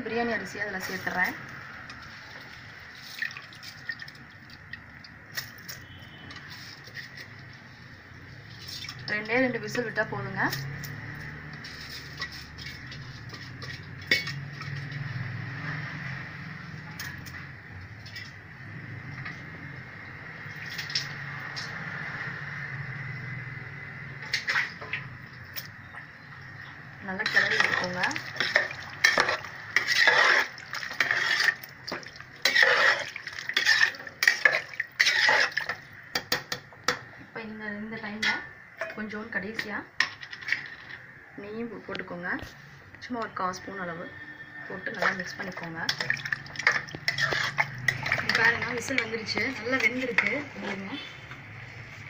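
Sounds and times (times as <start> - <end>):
metal pot and utensils clinking: 10.5 - 15.1, 27.1 - 37.1, 44.8 - 51.1
ladle stirring gravy: 11.2 - 15.0, 26.6 - 37.0, 44.9 - 52.0.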